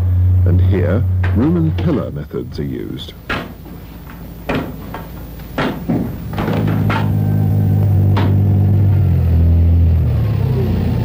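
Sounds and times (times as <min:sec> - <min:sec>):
low background noise: 0:00.0 - 0:11.0
sharp knocks: 0:01.2 - 0:08.8.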